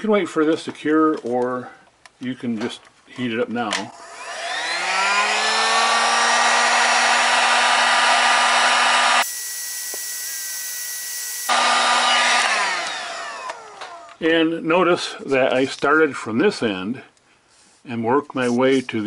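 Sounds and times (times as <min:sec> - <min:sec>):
heat gun fan whine: 0:03.9 - 0:14.2.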